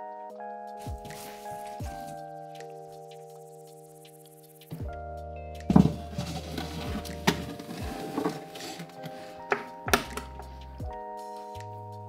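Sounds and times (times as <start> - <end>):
soft background music: 0.0 - 12.0
glass tank scraping: 5.7 - 9.7.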